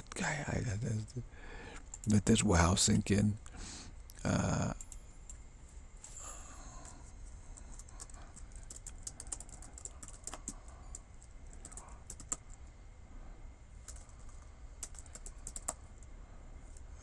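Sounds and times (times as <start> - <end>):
computer keyboard typing: 1.8 - 2.3, 6.8 - 12.7, 13.8 - 15.9.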